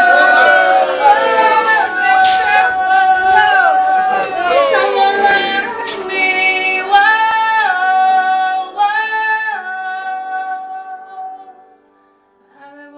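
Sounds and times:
crowd calling out a toast: 0:00.0 - 0:06.2.

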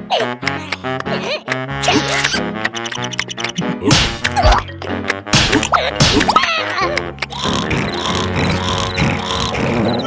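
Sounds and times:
playful cartoon music: 0:00.0 - 0:10.0
slapstick sound effects: 0:01.5 - 0:09.0
loud whack: 0:03.9 - 0:04.4, 0:05.3 - 0:06.4.

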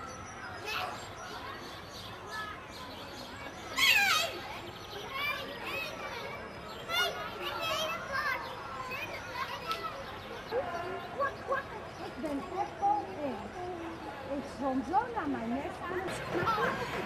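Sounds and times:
children calling out: 0:03.4 - 0:12.9.

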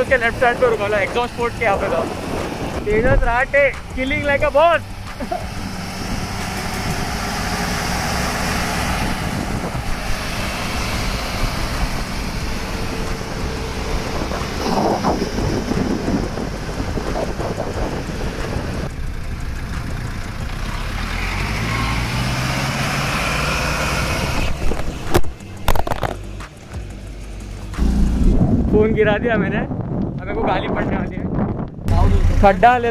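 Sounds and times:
wind buffeting microphone: 0:00.0 - 0:20.6, 0:22.2 - 0:26.6, 0:27.7 - 0:32.9
vehicle engines running: 0:00.0 - 0:30.4, 0:31.2 - 0:32.9.

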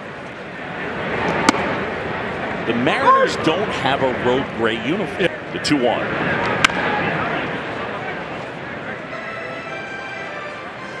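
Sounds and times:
crowd murmur: 0:00.0 - 0:11.0.

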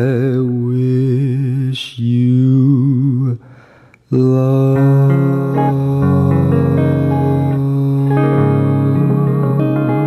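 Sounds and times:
singer breathing: 0:03.4 - 0:04.1
person singing jazz ballad: 0:04.1 - 0:10.0
instrumental accompaniment: 0:04.8 - 0:10.0.

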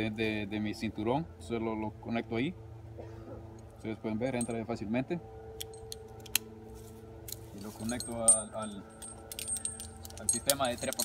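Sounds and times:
small metal clicks: 0:07.3 - 0:11.0.

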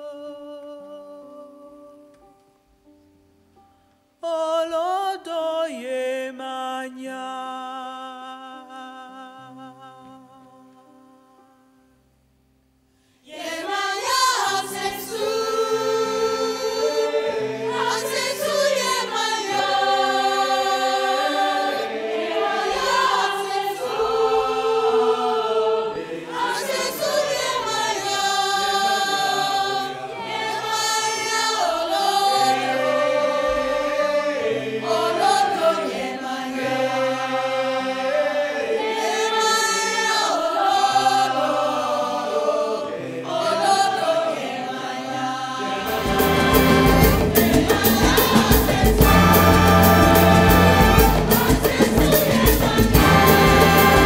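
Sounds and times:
choir singing a chant: 0:13.2 - 0:54.0.

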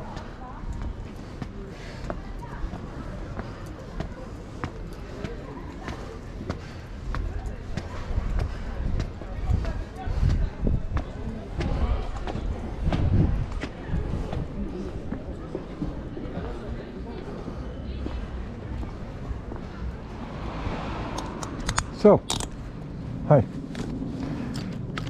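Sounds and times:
distant voices: 0:00.0 - 0:25.0.

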